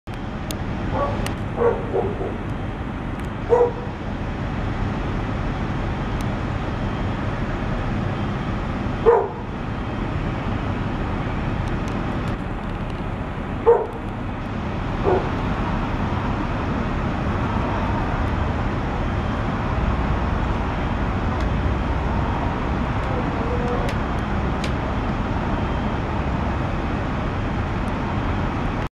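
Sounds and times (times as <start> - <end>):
steady background noise: 0.1 - 28.9
dog barking: 0.9 - 2.4, 3.5 - 3.9, 9.0 - 9.5, 13.6 - 14.0, 15.0 - 15.4.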